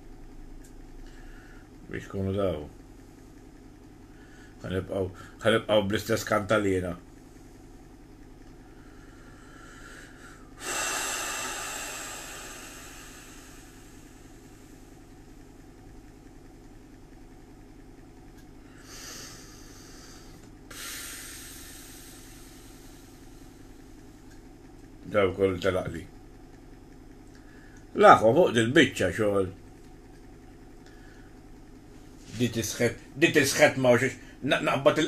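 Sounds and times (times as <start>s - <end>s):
low room hum: 0.0s - 35.0s
person breathing out heavily: 8.7s - 14.7s, 18.7s - 23.6s.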